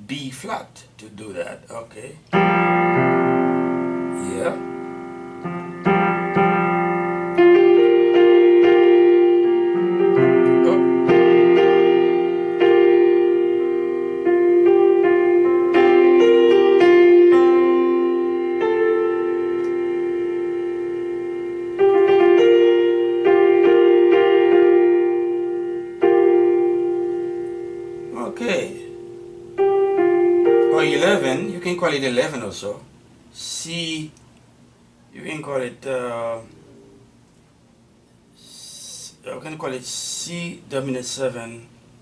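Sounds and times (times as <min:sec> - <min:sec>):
electronic piano chords: 0:02.2 - 0:33.4.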